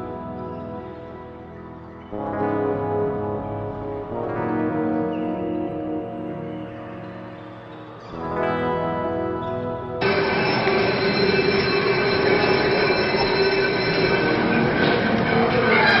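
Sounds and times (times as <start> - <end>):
held high tone: 10.0 - 16.0
screeching and rumbling noise: 10.0 - 16.0.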